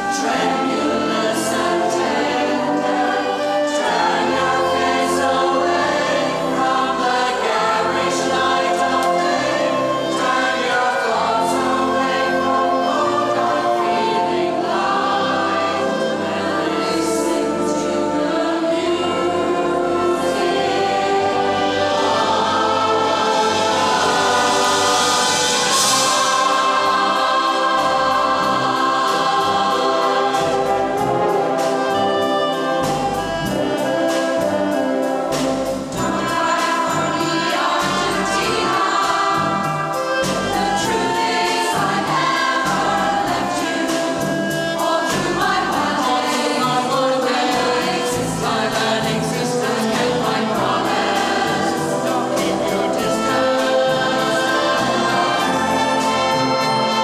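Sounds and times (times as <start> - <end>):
brass and wind band: 0.0 - 57.0
large choir singing: 0.0 - 57.0.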